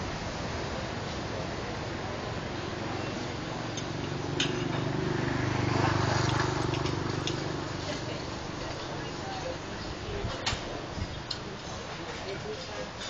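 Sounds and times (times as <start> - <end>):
motor vehicle engine passing: 1.8 - 9.2.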